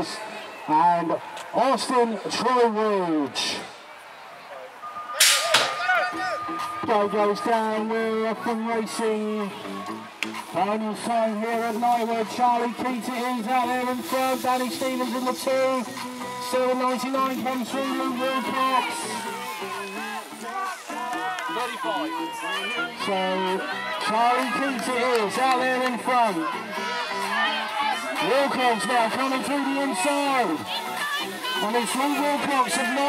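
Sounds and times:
voices: 0:01.0 - 0:33.0
background music: 0:04.6 - 0:33.0
man commentating: 0:10.5 - 0:19.4, 0:28.1 - 0:30.6, 0:31.5 - 0:33.0.

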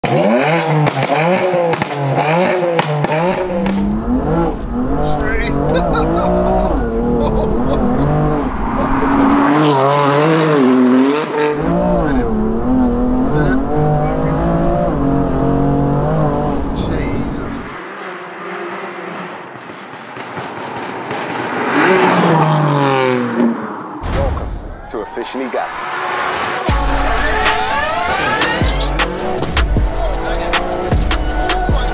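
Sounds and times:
car engine revving hard: 0:00.0 - 0:23.9, 0:25.7 - 0:31.9.

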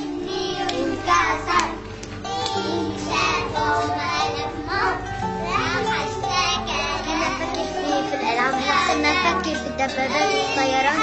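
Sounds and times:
background music: 0:00.0 - 0:11.0
children singing: 0:00.0 - 0:11.0.

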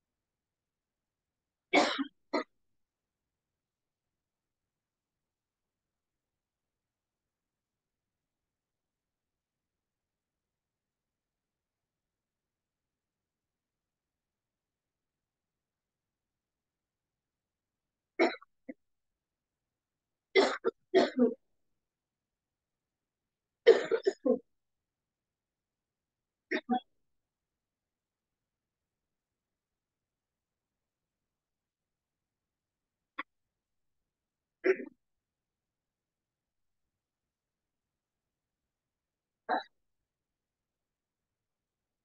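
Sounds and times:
person clearing throat: 0:01.8 - 0:02.5, 0:18.2 - 0:18.5, 0:20.4 - 0:21.4, 0:23.7 - 0:24.4, 0:34.6 - 0:35.0, 0:39.5 - 0:39.7
person coughing: 0:01.8 - 0:02.5, 0:18.2 - 0:18.5, 0:20.4 - 0:21.4, 0:23.7 - 0:24.4, 0:34.6 - 0:34.9.

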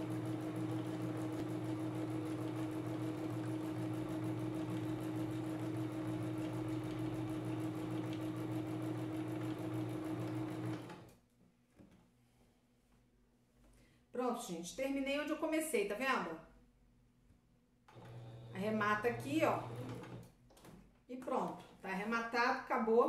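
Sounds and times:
sewing machine humming: 0:00.0 - 0:11.1, 0:17.9 - 0:20.2.

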